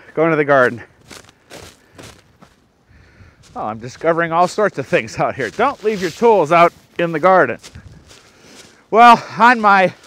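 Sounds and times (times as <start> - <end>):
footsteps in snow: 0.0 - 10.0.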